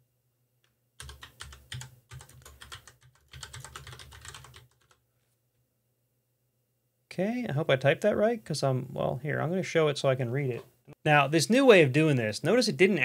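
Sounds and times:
typing on computer keyboard: 1.0s - 5.0s.

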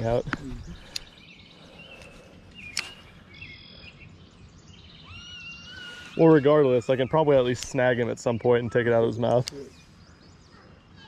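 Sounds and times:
birds chirping and whistling: 0.0s - 11.0s
faint outdoor hiss: 0.0s - 11.0s.

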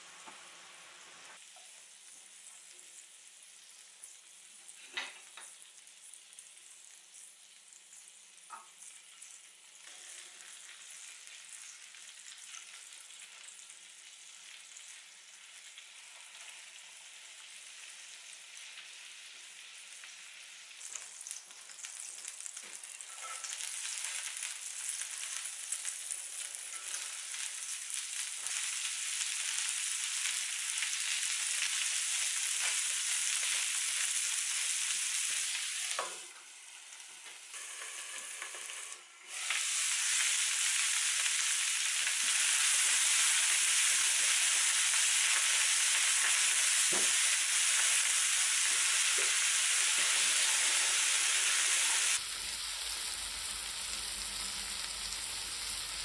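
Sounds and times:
patties sizzling in a frying pan: 0.0s - 56.0s.

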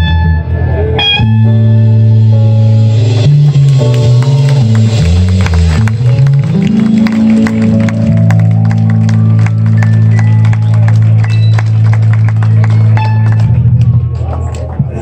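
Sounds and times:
live band playing: 0.0s - 14.6s.

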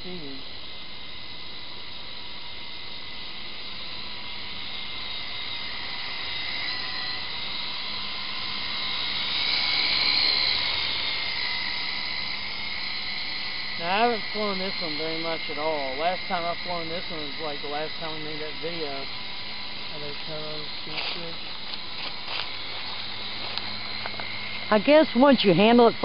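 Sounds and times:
rotor hum: 0.0s - 26.0s
toy helicopter motor whine: 0.0s - 26.0s.

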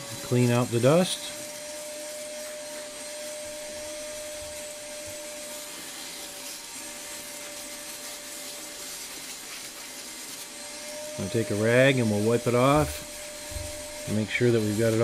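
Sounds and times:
shop vacuum whining: 0.0s - 15.0s.

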